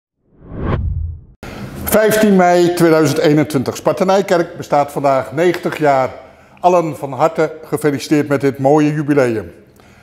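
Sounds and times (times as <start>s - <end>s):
whoosh: 0.2s - 1.4s
man speaking: 1.9s - 9.6s.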